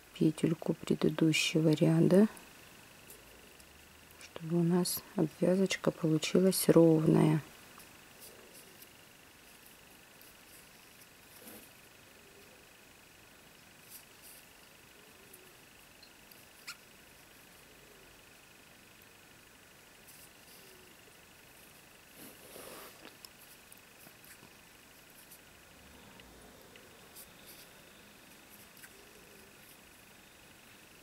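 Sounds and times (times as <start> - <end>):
faint high whine: 0.0 - 31.0
soft rustles of yarn: 6.2 - 11.8.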